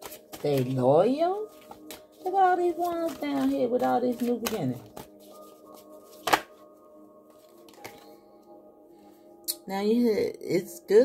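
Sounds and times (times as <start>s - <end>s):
cards clicking: 0.0s - 0.7s, 1.5s - 2.0s, 2.8s - 5.1s, 6.1s - 6.5s, 7.5s - 8.0s
soft background music: 0.0s - 11.0s.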